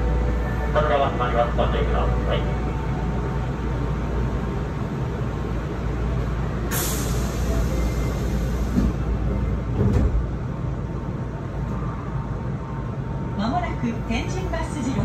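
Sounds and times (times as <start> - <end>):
train low hum: 0.0 - 15.0.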